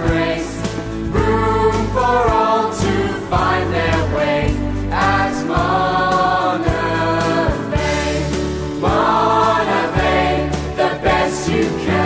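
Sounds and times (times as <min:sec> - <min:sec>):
instrumental backing with bass: 0:00.0 - 0:12.0
percussion strikes: 0:00.0 - 0:12.0
students singing: 0:00.0 - 0:12.0.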